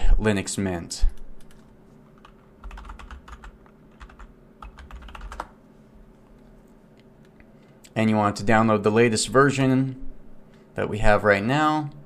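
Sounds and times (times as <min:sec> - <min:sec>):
computer keyboard typing: 0:01.4 - 0:05.6.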